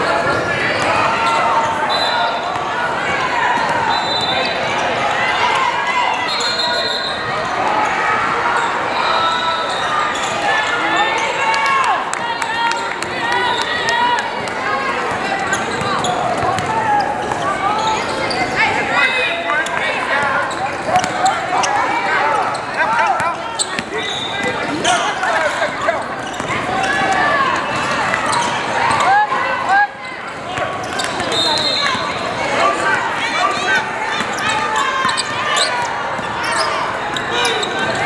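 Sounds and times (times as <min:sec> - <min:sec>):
voices echoing in a large hall: 0:00.0 - 0:38.0.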